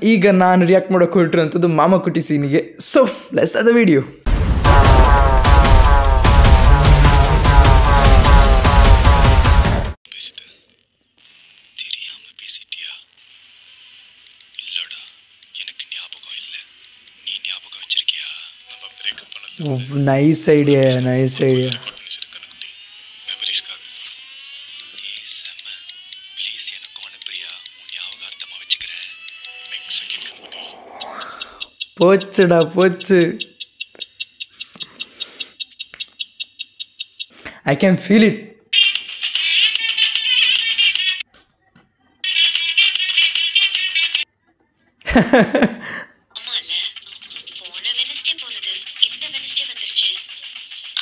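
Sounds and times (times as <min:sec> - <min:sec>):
faint whispered speech: 0:14.6 - 0:16.7
fast high-pitched ticking: 0:31.0 - 0:37.4, 0:46.4 - 0:51.0.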